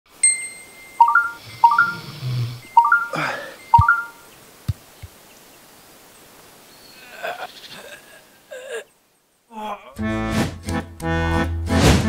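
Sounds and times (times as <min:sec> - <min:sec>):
rising chimes: 0:00.1 - 0:04.2.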